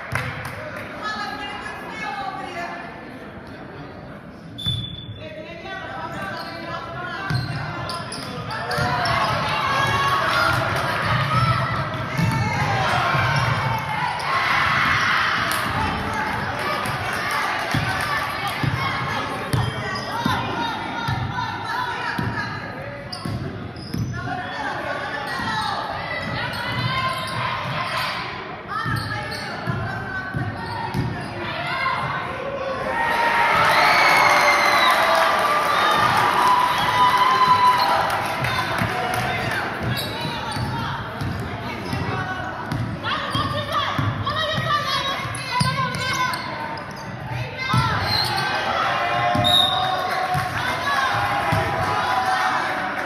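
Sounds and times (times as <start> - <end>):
people calling out in gym: 4.6 - 53.0.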